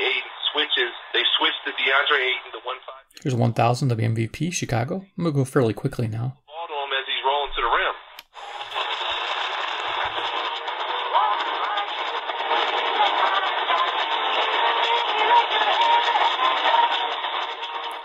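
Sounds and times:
radio static: 0.0 - 3.0, 7.0 - 18.0
distant radio music: 8.4 - 18.0.

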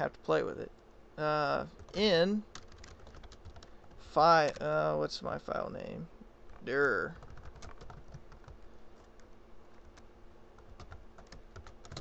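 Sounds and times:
keyboard typing clicks: 7.2 - 9.2, 9.9 - 12.0.

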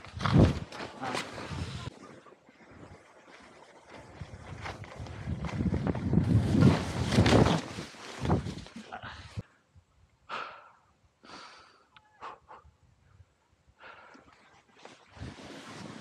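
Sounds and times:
wind buffeting microphone: 0.0 - 9.4
skis sliding over snow: 0.1 - 8.9, 14.8 - 16.0.

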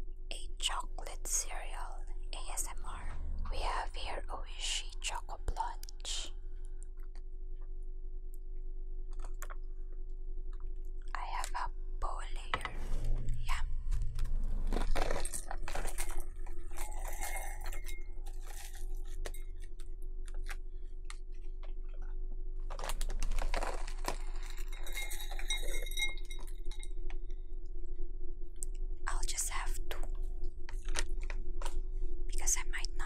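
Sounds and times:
woman whispering: 0.3 - 6.3, 11.2 - 12.7, 13.3 - 13.8, 29.1 - 30.1, 32.3 - 33.0
glass bowl ringing: 16.8 - 18.3, 24.7 - 26.9.

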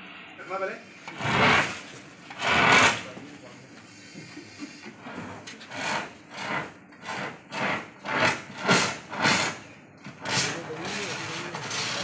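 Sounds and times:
fire extinguisher hissing bursts: 0.4 - 3.2.

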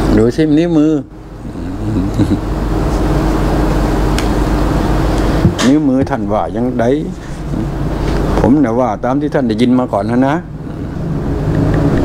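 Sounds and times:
motor engine humming: 1.1 - 12.0.

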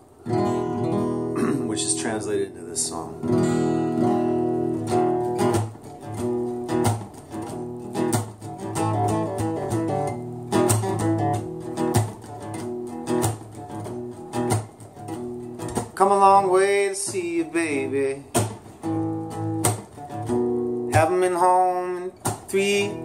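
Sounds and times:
acoustic guitar strumming: 0.0 - 23.0.

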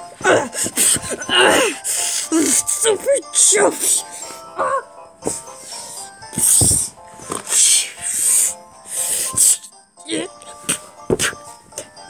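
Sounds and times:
background music: 0.0 - 12.0
mouth hissing sound effect: 5.6 - 9.8.

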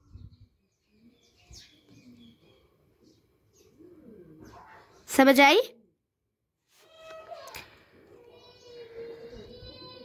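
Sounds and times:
pigeon cooing: 0.9 - 5.0.

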